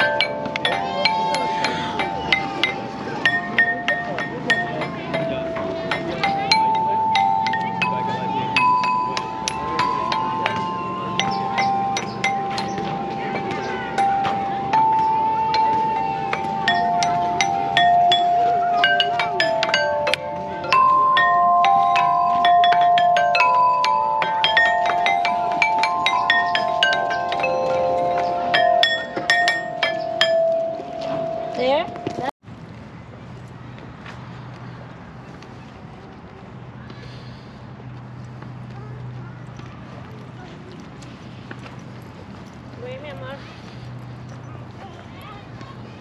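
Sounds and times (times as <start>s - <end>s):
metal tubes struck with mallet: 0.0s - 32.3s.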